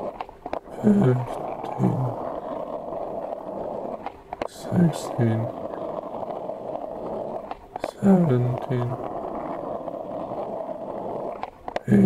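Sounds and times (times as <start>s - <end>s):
skateboard wheels rolling on asphalt: 0.0s - 12.0s.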